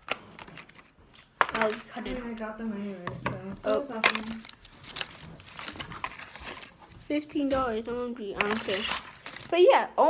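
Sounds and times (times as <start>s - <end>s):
packaging rustling: 0.0s - 3.0s, 3.6s - 7.2s, 8.2s - 9.7s.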